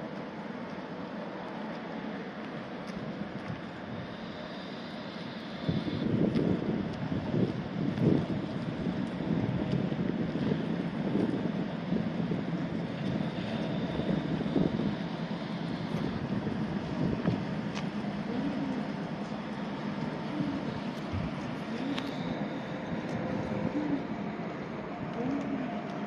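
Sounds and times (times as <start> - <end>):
tram rolling slowly: 0.0 - 26.0
wind buffeting microphone: 5.7 - 25.9.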